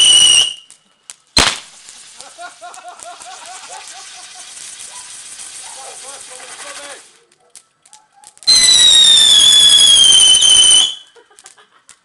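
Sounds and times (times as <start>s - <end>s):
whistling firework: 0.0s - 0.8s, 1.4s - 7.2s, 8.3s - 11.2s
fireworks crackling hiss: 0.0s - 12.0s
people laughing: 2.2s - 4.6s, 11.1s - 12.0s.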